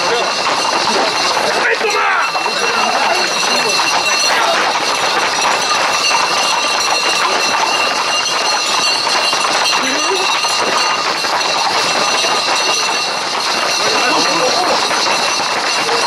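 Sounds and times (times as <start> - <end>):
crowd voices: 0.0 - 16.0
horse hooves on paved road: 0.0 - 16.0
people running: 0.0 - 16.0.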